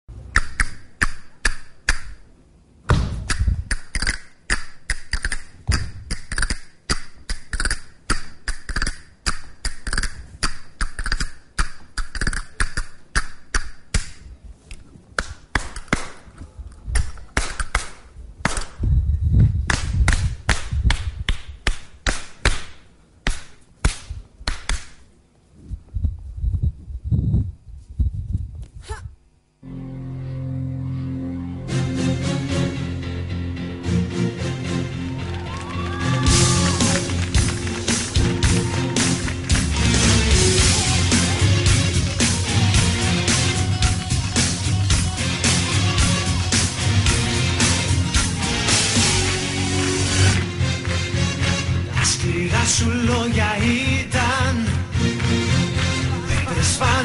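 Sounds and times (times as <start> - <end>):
flamenco percussion stamps and claps: 19.7 - 25.0, 35.3 - 51.1.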